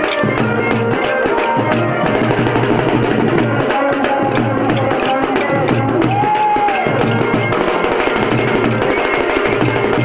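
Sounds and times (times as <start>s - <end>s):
folk music drum beat: 0.0s - 10.0s.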